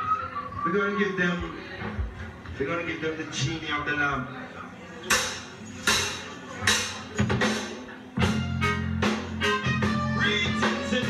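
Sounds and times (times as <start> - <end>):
ska band playing: 5.9 - 11.0.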